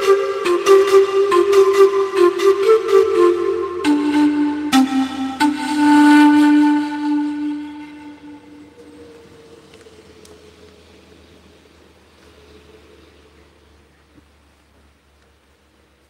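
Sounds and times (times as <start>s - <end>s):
panpipes holding a note: 0.0s - 9.8s.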